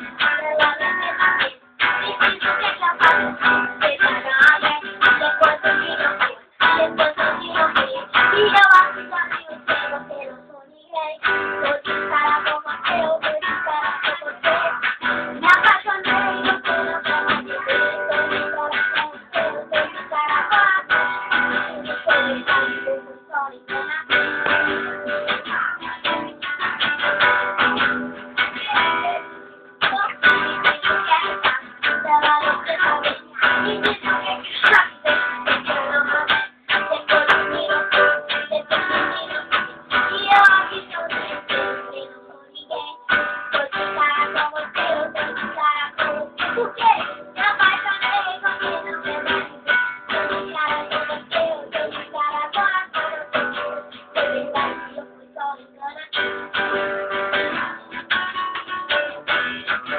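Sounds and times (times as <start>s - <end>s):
acoustic guitar strumming chords: 0.0s - 59.9s
girl singing: 0.0s - 59.9s.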